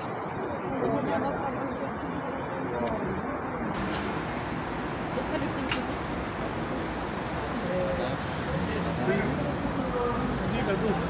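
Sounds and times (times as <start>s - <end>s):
indistinct chatter of people: 0.0s - 11.0s
outdoor background rush: 0.0s - 11.0s.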